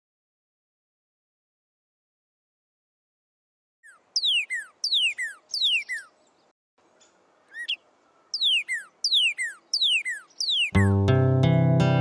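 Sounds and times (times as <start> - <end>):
songbird whistling: 3.8 - 6.2, 7.5 - 10.9.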